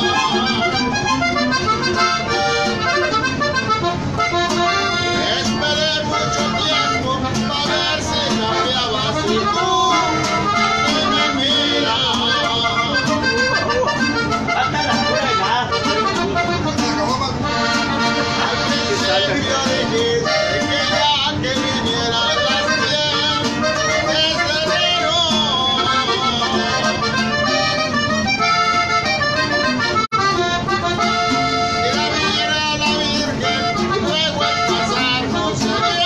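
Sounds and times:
man singing: 0.0s - 0.8s, 4.6s - 16.0s, 16.7s - 27.8s, 31.3s - 36.0s
button accordion: 0.0s - 36.0s
strummed twelve-string guitar: 0.0s - 36.0s.

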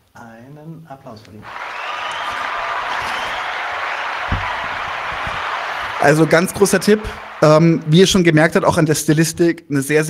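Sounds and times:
crowd applause: 1.4s - 8.6s.

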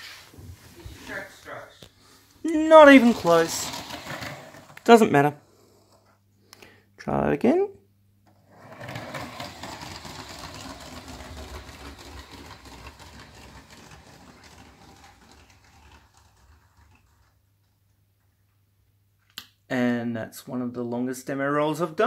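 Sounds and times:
toy train wheels rattling on track: 2.5s - 4.9s, 8.5s - 17.3s.

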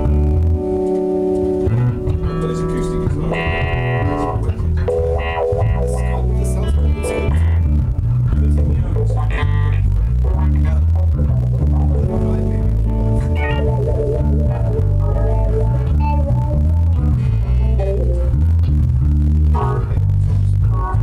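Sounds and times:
bass guitar line: 0.0s - 21.0s
sustained keyboard chords: 0.0s - 21.0s.

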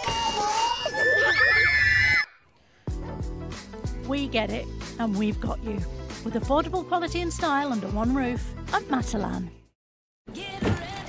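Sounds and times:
shrill high screaming: 0.0s - 2.5s
music: 2.8s - 11.0s.

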